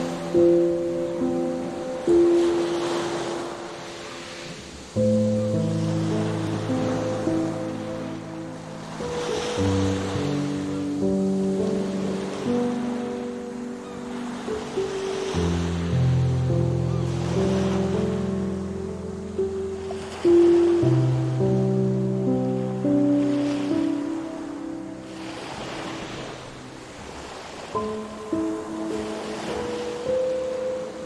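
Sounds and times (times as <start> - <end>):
ocean waves breaking: 0.0 - 31.0
soft sustained chords music: 0.0 - 31.0.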